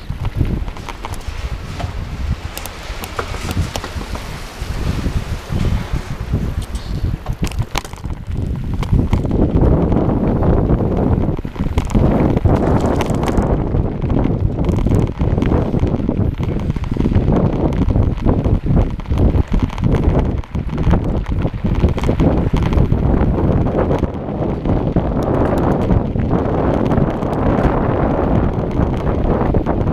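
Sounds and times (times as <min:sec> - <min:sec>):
bike rattles and knocks: 0:00.0 - 0:29.9
bike riding over gravel: 0:00.0 - 0:29.9
wind buffeting microphone: 0:00.0 - 0:29.9.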